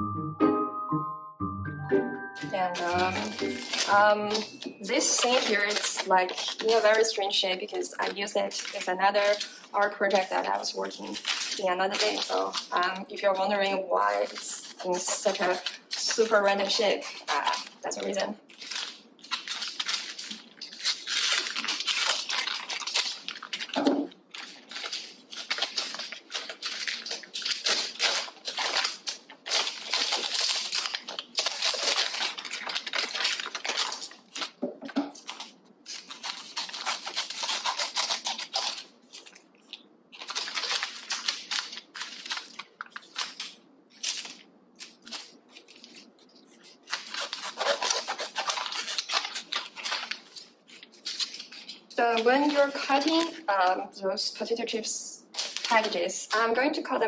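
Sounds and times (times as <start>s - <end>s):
foil bags crinkling: 2.4s - 53.5s, 55.3s - 57.0s.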